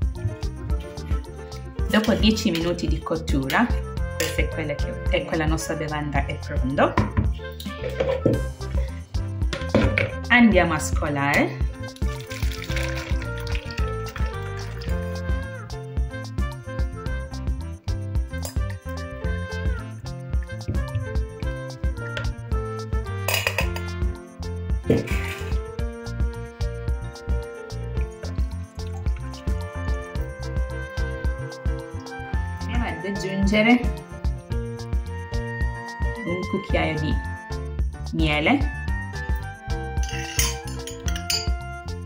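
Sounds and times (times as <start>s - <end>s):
background music with steady beat: 0.0s - 42.0s
kitchenware clattering: 7.0s - 8.5s, 23.3s - 23.9s, 24.8s - 25.6s, 40.0s - 41.6s.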